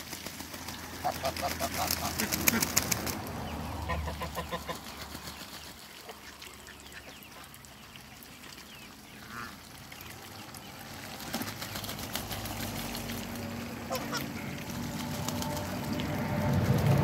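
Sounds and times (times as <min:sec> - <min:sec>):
wings flapping: 0:00.0 - 0:03.5, 0:04.3 - 0:05.8, 0:11.0 - 0:17.0
water splashing: 0:00.0 - 0:17.0
ducks quacking: 0:00.9 - 0:05.3, 0:06.0 - 0:07.6, 0:09.1 - 0:09.7, 0:11.3 - 0:16.7.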